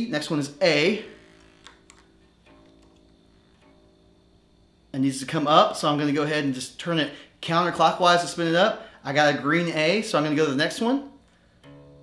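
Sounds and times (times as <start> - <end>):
tuning peg clicks: 11.2 - 12.0
bass string ringing: 11.6 - 12.0.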